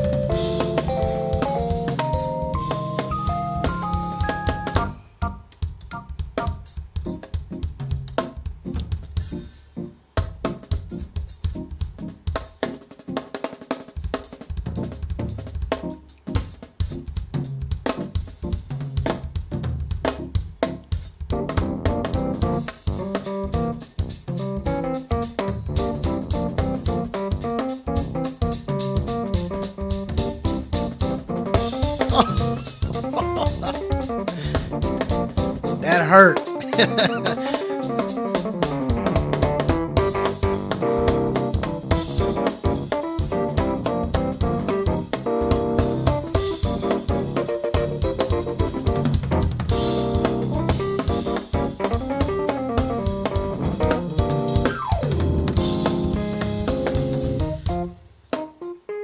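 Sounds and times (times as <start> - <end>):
keyboard notes: 0.0 - 7.7, 24.6 - 59.0
drum kit playing: 0.0 - 59.0.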